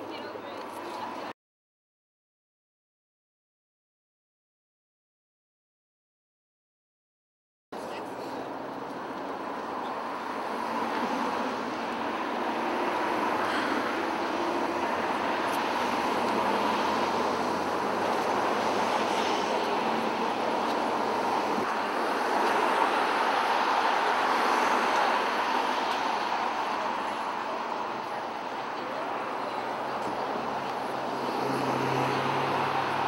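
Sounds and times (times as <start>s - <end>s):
passing road traffic: 0.0s - 1.4s, 7.8s - 33.0s.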